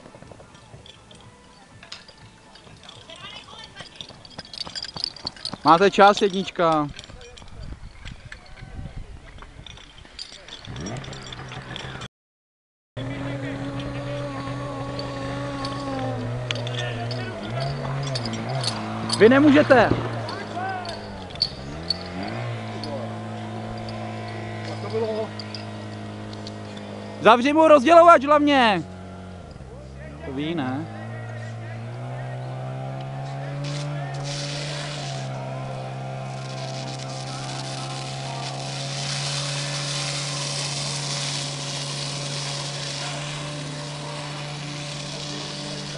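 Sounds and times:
distant voices talking: 13.0s - 45.9s
pump engine running at high revs: 13.0s - 45.9s.

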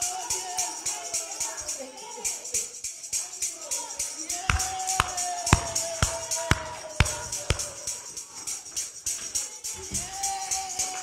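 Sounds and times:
tambourine jingling and struck: 0.0s - 11.0s.

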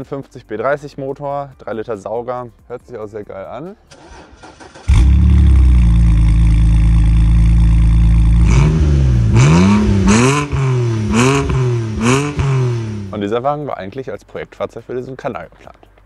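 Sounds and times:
car engine starting and revving: 3.9s - 13.3s.

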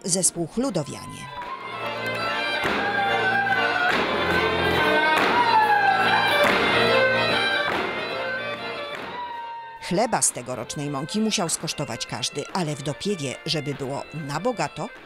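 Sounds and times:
folk dance music: 0.9s - 9.2s, 9.8s - 15.0s.

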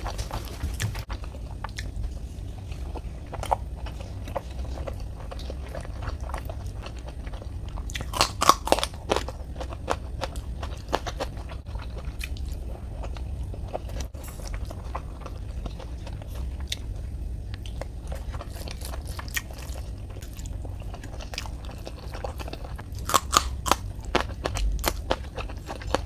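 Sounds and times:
person chewing food: 0.0s - 26.0s
crunchy bites: 7.8s - 12.5s, 17.6s - 26.0s.

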